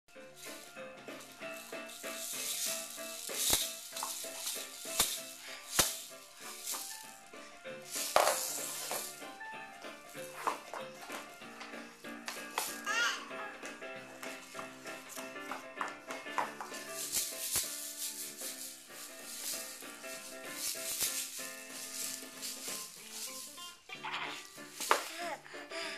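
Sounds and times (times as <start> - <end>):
background music: 0.1 - 25.9
plastic baby rattle shaken: 0.4 - 7.2, 7.8 - 9.5, 12.3 - 13.0, 16.3 - 25.2.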